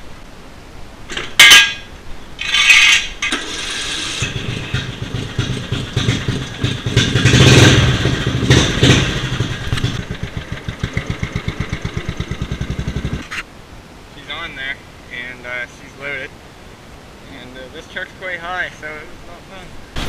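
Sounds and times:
riding lawn mower engine running: 1.1 - 13.5.

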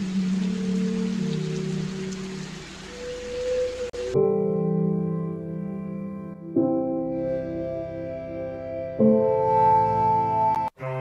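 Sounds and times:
rain-like hiss: 0.0 - 4.2.

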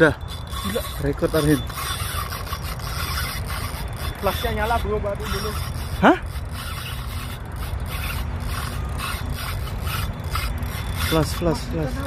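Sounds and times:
fishing reel drag buzzing: 0.0 - 12.0.

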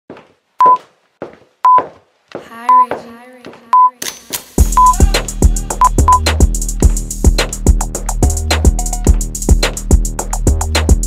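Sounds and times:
person speaking: 2.4 - 4.1
electronic timer beeps: 4.8 - 5.0.

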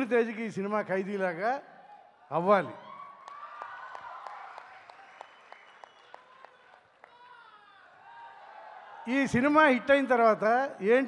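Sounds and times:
audience applause: 3.2 - 9.0.

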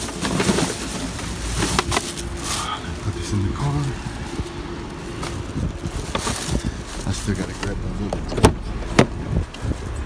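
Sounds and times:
plastic bag rustling: 0.0 - 8.3
steady low hum: 0.0 - 10.0.

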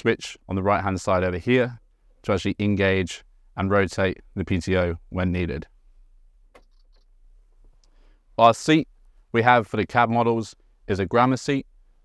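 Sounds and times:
sharp click: 6.5 - 7.1.

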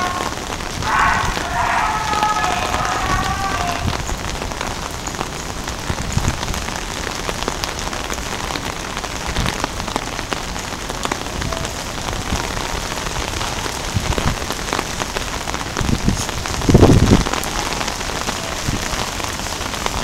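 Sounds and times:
rain pattering on surfaces: 0.0 - 20.0.

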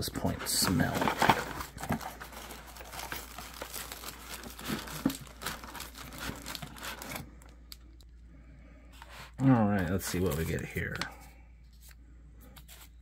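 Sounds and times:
cardboard and plastic rustling: 0.2 - 7.6.

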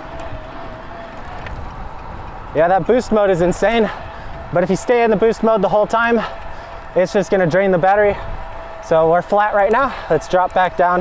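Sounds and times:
tyre rumble: 0.0 - 5.2
faint clicks: 0.0 - 5.4
wind: 0.0 - 11.0.

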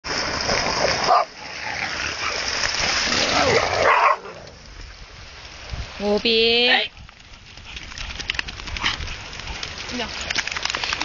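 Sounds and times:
dog barking: 3.8 - 4.3.

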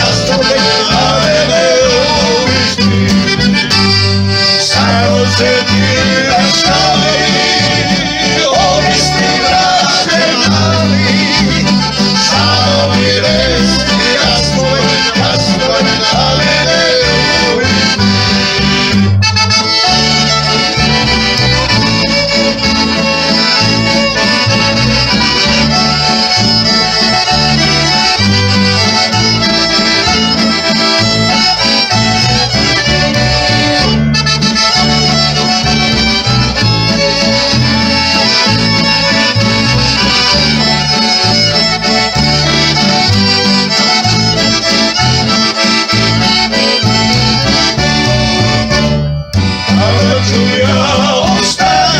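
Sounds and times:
man singing: 0.0 - 3.5, 4.6 - 18.3, 47.5 - 48.8, 49.7 - 51.9
accordion: 0.0 - 51.9
plucked double bass: 0.0 - 51.9
strummed acoustic guitar: 0.0 - 51.9
violin: 0.0 - 51.9.

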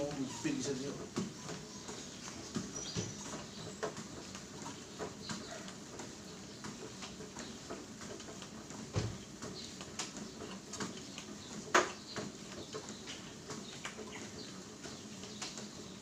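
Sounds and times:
footfalls on treadmill belt: 0.0 - 16.0.

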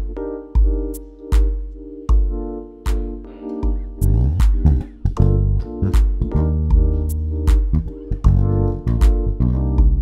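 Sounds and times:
sustained keyboard chords: 0.0 - 10.0
electric bass groove: 4.0 - 10.0.

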